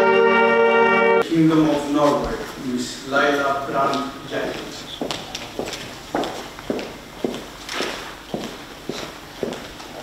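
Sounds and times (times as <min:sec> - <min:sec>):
high heels clicking on stone floor: 0:03.8 - 0:10.0.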